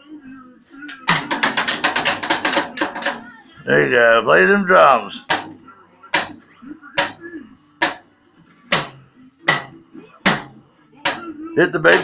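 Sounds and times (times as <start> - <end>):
toy drum hits: 1.0 - 3.2, 7.0 - 7.2, 7.8 - 8.0, 8.7 - 11.3.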